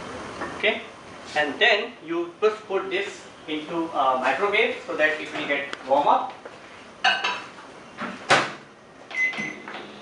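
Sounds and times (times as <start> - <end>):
high keypad beep: 9.2 - 9.6.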